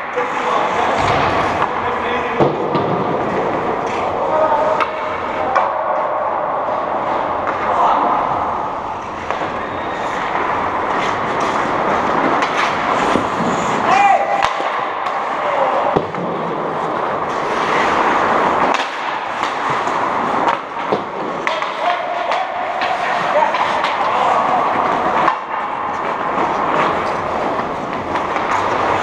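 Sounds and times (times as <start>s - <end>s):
skates scraping on ice: 0.0s - 29.0s
sticks and puck clacking: 0.0s - 29.0s
players shouting: 13.7s - 16.2s, 21.4s - 25.9s.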